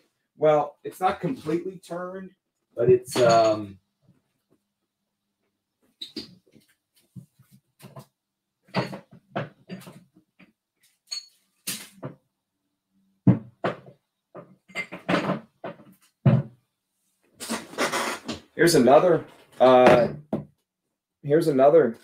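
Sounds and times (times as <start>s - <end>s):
glass bottles knocking and clinking: 2.9s - 3.7s, 8.7s - 10.0s, 11.1s - 11.4s, 13.3s - 16.5s.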